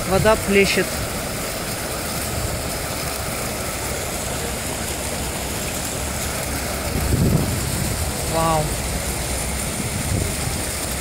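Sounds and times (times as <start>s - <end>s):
fountain jets splashing into pool: 0.0s - 11.0s.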